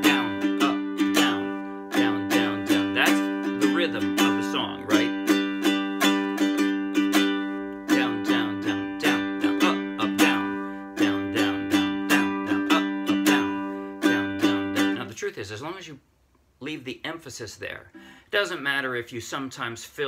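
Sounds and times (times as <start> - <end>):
ukulele strumming: 0.0 - 15.2.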